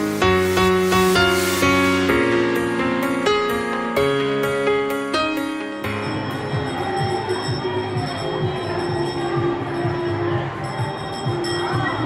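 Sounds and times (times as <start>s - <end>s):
fast beat ride music: 0.0s - 4.8s, 5.8s - 12.0s
crowd chatter: 5.9s - 12.0s.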